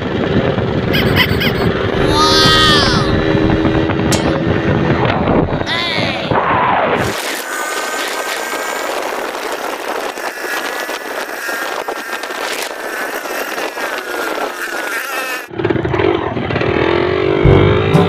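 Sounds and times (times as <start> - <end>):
vehicle engine and road noise: 0.0 - 18.0
low sound: 1.1 - 6.4, 17.4 - 18.0.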